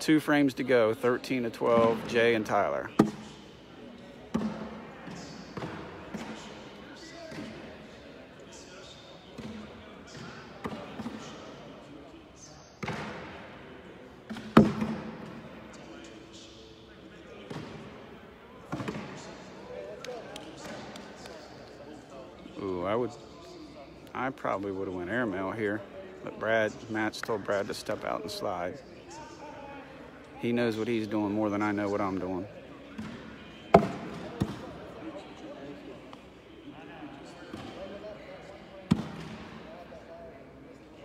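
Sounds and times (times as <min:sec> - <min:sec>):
faint murmur of voices: 0:00.0 - 0:41.0.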